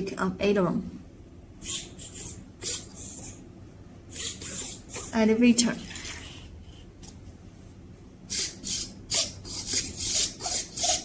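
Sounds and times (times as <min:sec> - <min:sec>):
small servos whirring: 0:04.1 - 0:05.2.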